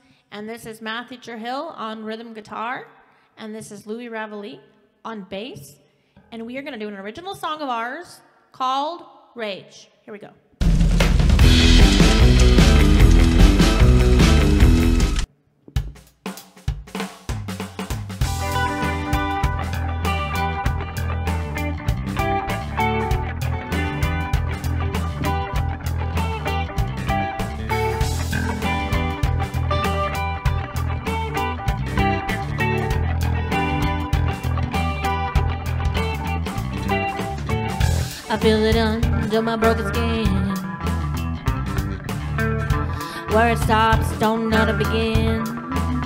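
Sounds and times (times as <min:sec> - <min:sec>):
rock band playing: 0:10.6 - 0:15.3, 0:17.9 - 0:46.0.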